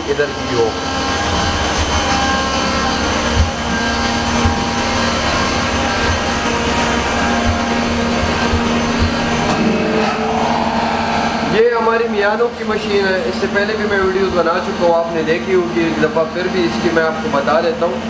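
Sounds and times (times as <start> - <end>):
machine hum with steady tones: 0.0 - 18.0
low bumps: 3.4 - 13.0
low rumble: 7.3 - 13.0.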